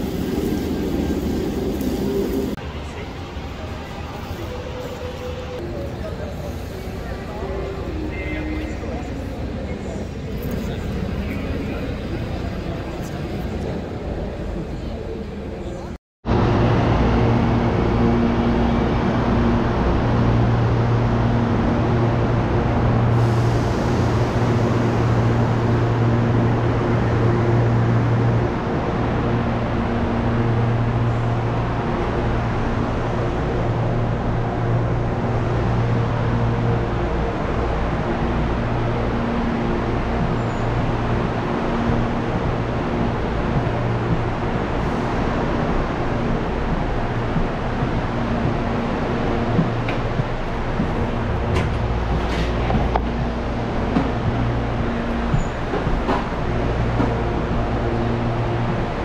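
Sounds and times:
electric train humming: 0:00.0 - 0:59.0.

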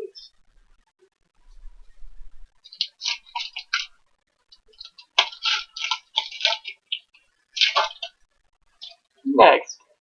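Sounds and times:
foil wrapper crinkling and tearing: 0:04.7 - 0:08.1.

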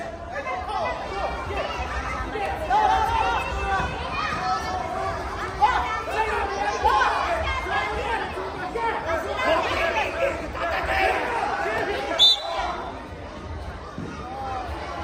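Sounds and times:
many voices calling out: 0:00.0 - 0:15.0.

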